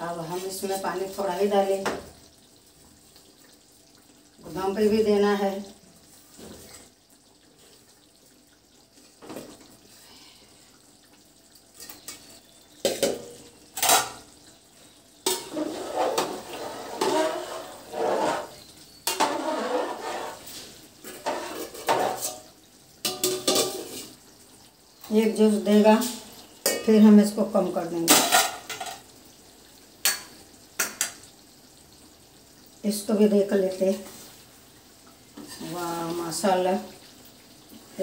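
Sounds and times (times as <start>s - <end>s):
metal ladle stirring in a pot: 15.3s - 22.5s.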